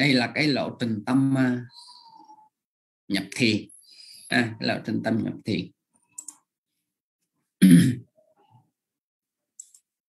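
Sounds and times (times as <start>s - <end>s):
person clearing throat: 7.6s - 8.1s.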